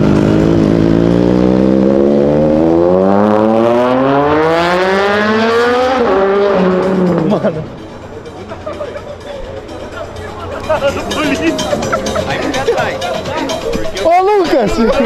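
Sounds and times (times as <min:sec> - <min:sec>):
motorcycle engine accelerating: 0:00.0 - 0:07.6.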